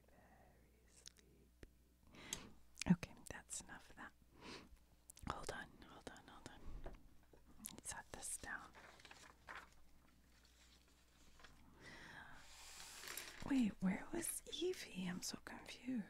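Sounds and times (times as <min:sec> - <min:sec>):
soft whispering: 0:00.0 - 0:01.6, 0:02.8 - 0:04.2, 0:05.1 - 0:09.6, 0:10.5 - 0:16.0
rustling of plastic sleeves: 0:08.2 - 0:11.8, 0:12.5 - 0:14.6.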